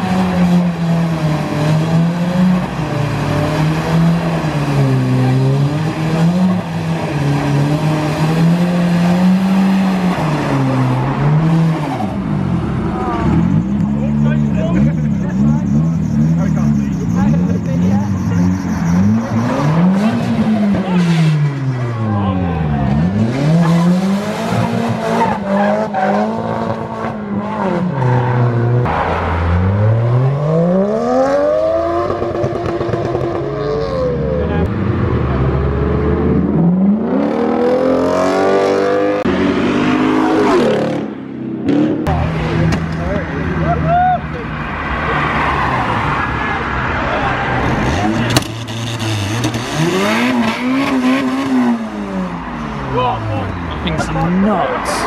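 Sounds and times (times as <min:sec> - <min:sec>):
crowd voices: 0:00.0 - 0:28.1, 0:41.8 - 0:48.9, 0:49.7 - 0:55.0
car engines revving: 0:00.0 - 0:55.0.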